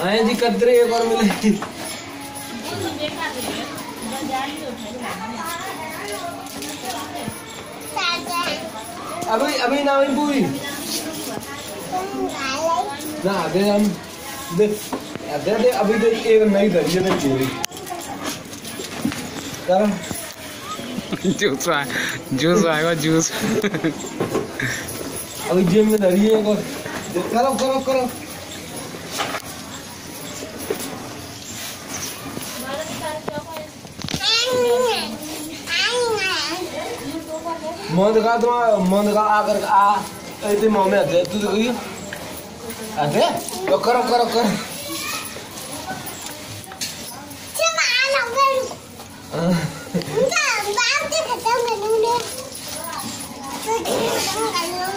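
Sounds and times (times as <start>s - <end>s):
children playing: 0.0s - 54.9s.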